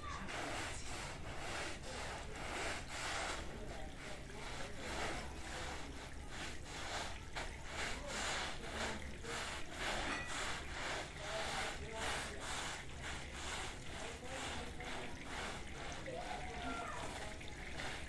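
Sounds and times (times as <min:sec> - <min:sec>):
push brush scrubbing wet carpet: 0:00.0 - 0:18.0.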